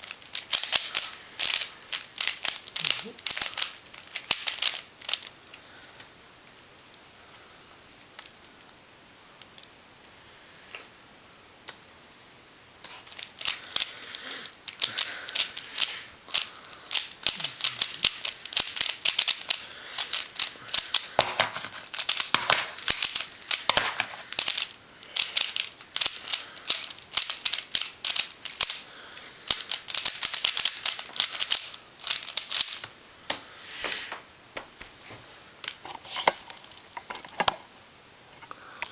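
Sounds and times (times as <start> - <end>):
plastic puzzle cube clicking turns: 0.0 - 5.3, 13.0 - 32.9.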